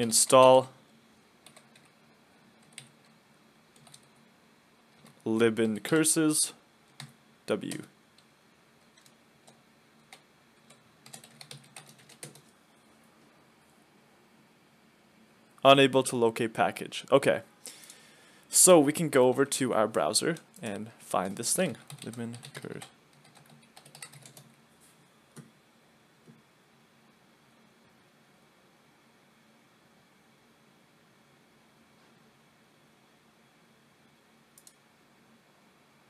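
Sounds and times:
computer keyboard typing: 1.4 - 2.0, 2.6 - 3.2, 3.8 - 4.1, 6.9 - 12.5, 21.8 - 24.5.

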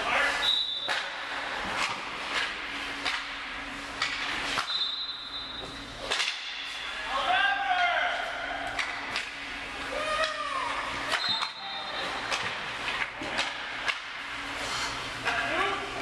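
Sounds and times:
sticks and pucks clacking: 0.8 - 4.9, 6.0 - 6.9, 7.8 - 9.4, 11.1 - 14.2.

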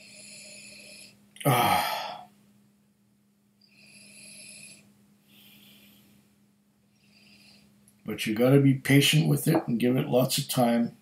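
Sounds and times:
soft airy breaths: 0.0 - 2.4, 3.6 - 8.0.

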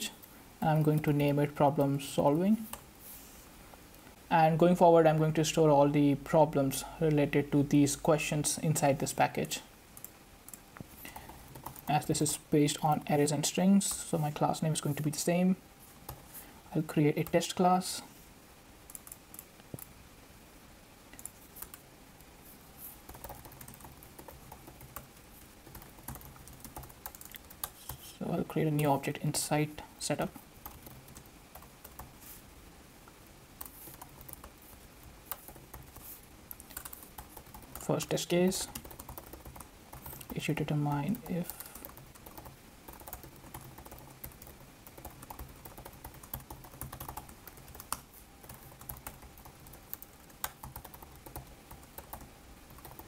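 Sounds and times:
computer keyboard typing: 0.7 - 2.8, 10.0 - 14.1, 18.9 - 19.9, 21.1 - 21.8, 23.1 - 28.9, 30.3 - 32.1, 33.6 - 53.0.

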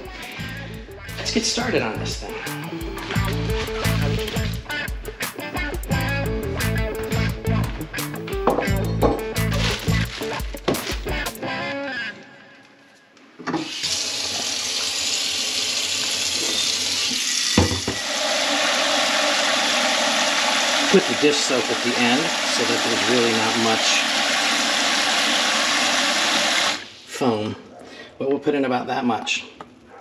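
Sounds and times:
music with steady beat: 0.0 - 11.4
faucet filling pot with water: 13.7 - 27.1.

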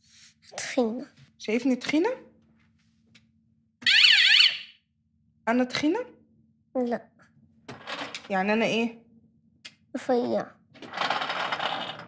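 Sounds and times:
shrill warbling electronic alarm: 3.8 - 4.8.

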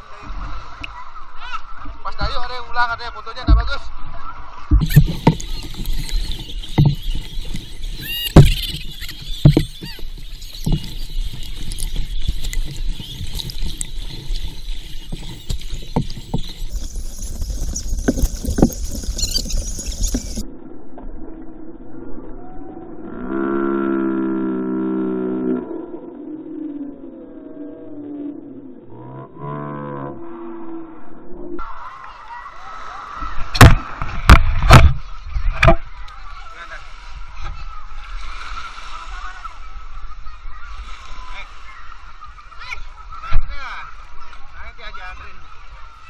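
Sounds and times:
paddle knocking against hull: 3.4 - 3.8, 4.7 - 20.4
water sloshing and splashing: 4.6 - 20.5, 32.8 - 44.5
held low note: 20.4 - 31.6.

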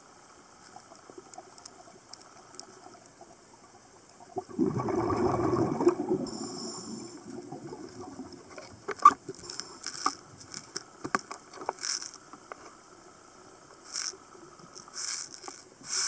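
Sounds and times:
exhaled bubbles rushing underwater: 4.2 - 8.6
sharp clicks and pops: 7.3 - 12.8.

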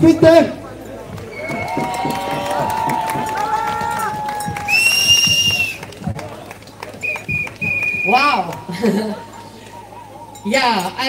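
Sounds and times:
crowd applauding and cheering: 1.0 - 10.2
long held whoops: 1.3 - 5.8
high whistle blast: 4.6 - 5.8, 7.0 - 8.3.

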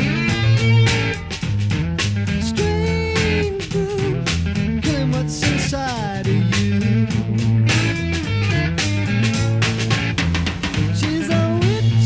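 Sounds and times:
bass: 0.0 - 12.0
drum strokes: 0.0 - 12.0
electric guitar sliding notes: 0.0 - 12.0.

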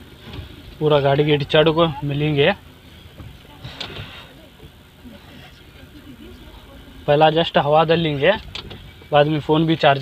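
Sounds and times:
car engine and road noise: 0.0 - 10.0
faint voices: 0.0 - 10.0.

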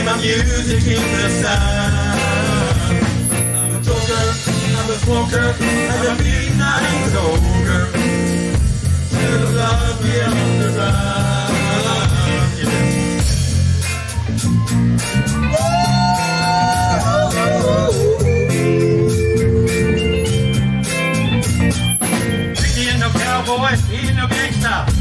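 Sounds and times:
bass groove: 0.0 - 25.0
drum groove: 0.0 - 25.0
electric guitar sliding held notes: 14.0 - 23.5.

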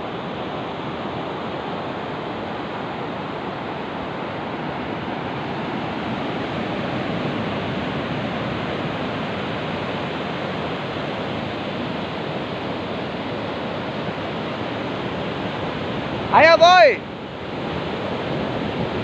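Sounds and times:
ocean surf breaking: 0.1 - 19.0.

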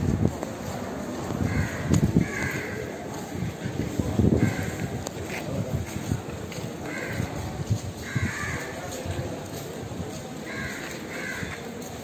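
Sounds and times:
crows cawing: 1.4 - 3.0, 4.4 - 4.8, 6.8 - 7.4, 8.0 - 8.8, 10.4 - 11.7.

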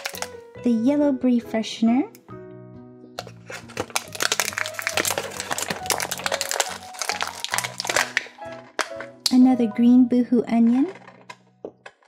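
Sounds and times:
plastic blister tray crinkling: 0.0 - 0.4, 3.2 - 9.4, 10.6 - 12.0
background music: 0.0 - 12.0.

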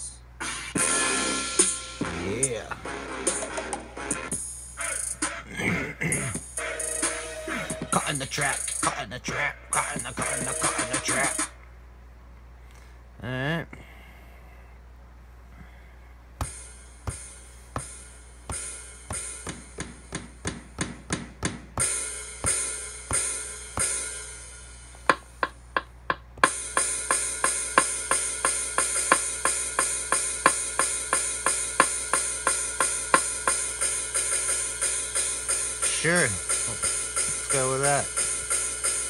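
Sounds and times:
drum loop with hi-hats: 0.0 - 11.6, 16.4 - 24.4, 25.0 - 39.0
drum machine hits: 0.7 - 5.4, 6.1 - 11.5, 16.4 - 24.4, 25.0 - 39.0.

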